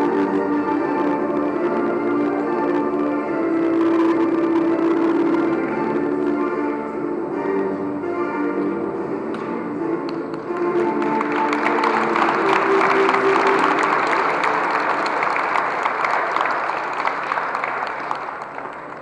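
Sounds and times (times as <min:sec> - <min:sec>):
music in a hall: 0:00.0 - 0:19.0
audience applauding: 0:10.1 - 0:19.0.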